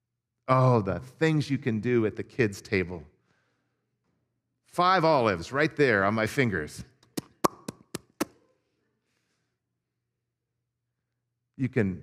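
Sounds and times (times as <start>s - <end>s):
mouth pops made with lips: 7.0s - 8.4s.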